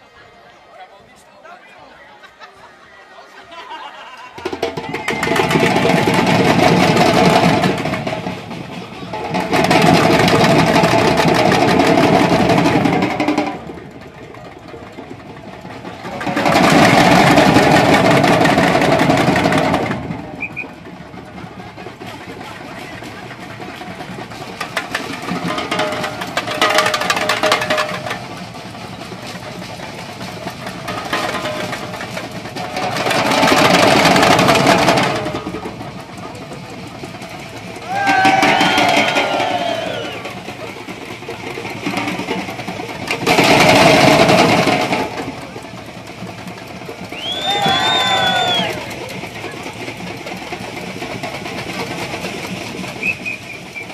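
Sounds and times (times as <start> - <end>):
samba percussion band playing: 4.3 - 53.9.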